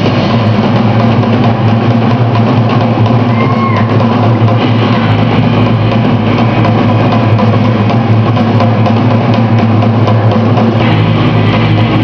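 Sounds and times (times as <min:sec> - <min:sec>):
drum kit: 0:00.0 - 0:12.0
electric bass: 0:00.0 - 0:12.0.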